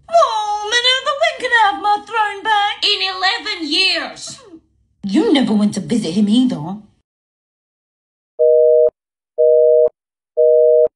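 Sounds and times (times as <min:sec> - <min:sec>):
telephone busy signal beeps: 0:08.4 - 0:10.9.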